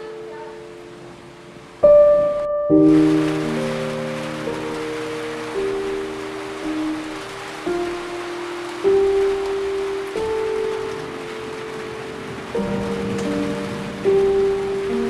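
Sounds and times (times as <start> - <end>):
slow gentle music: 0.0 - 15.0
steady rain hiss: 0.0 - 15.0.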